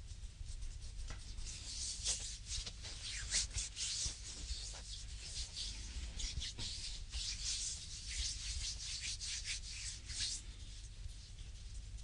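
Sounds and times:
hands rubbing skin: 0.4 - 11.6.

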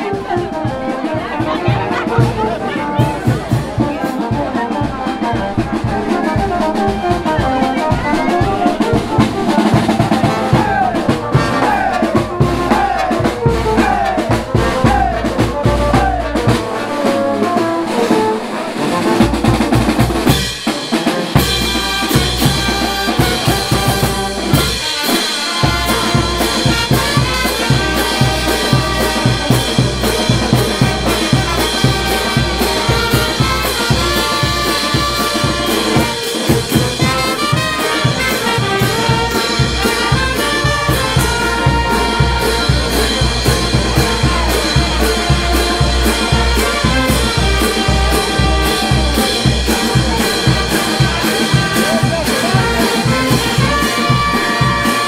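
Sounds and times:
brass band playing: 0.0 - 55.0
bass drum beat: 0.1 - 16.7, 21.4 - 25.0, 25.6 - 55.0.

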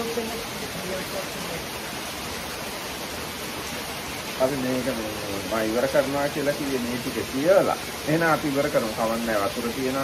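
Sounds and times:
steady hissing noise: 0.0 - 10.0.

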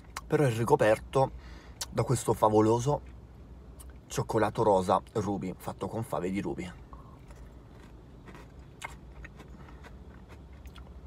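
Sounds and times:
low steady hum: 0.0 - 11.0
person chewing wafer bar: 7.0 - 11.0.

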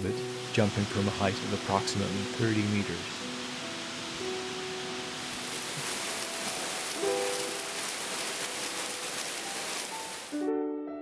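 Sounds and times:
waterfall rushing: 0.0 - 10.4
soft background music: 0.0 - 11.0.

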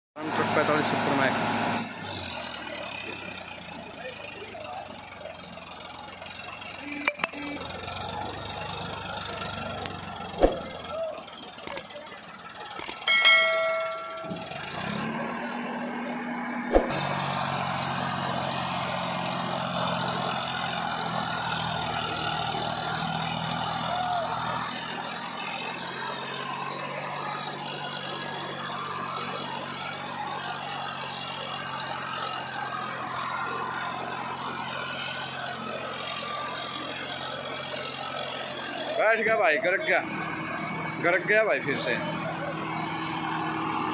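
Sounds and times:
tractor diesel engine under load: 0.2 - 43.9.

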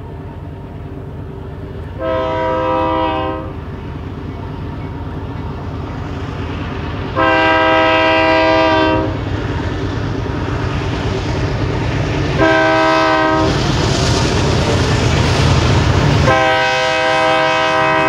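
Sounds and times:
diesel locomotives rumbling: 0.0 - 18.0
multi-chime train air horn: 2.0 - 3.6, 7.2 - 9.2, 12.4 - 13.5, 16.3 - 18.0.

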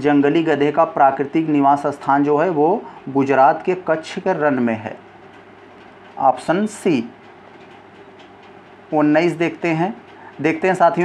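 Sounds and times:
man speaking: 0.0 - 5.0, 6.2 - 7.2, 8.9 - 11.0
low background hum: 0.0 - 11.0.

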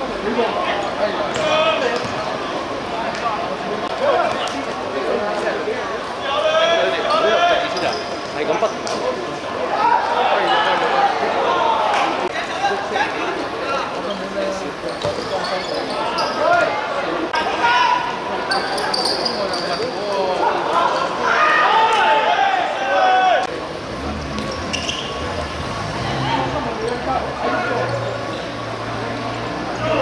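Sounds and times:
players shouting: 0.0 - 8.2, 9.4 - 14.2, 15.7 - 19.3, 20.2 - 23.6, 24.8 - 30.0.

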